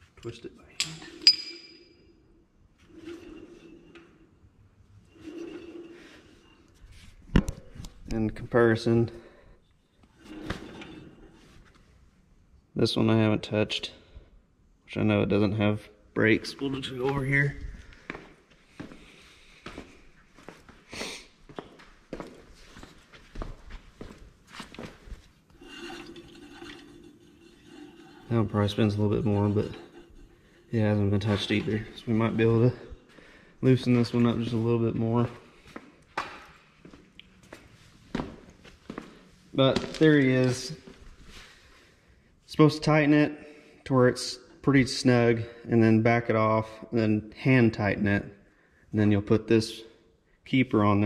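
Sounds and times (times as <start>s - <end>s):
sharp metallic clink: 0.8s - 2.0s
footsteps on concrete floor: 16.8s - 25.5s, 35.5s - 41.4s.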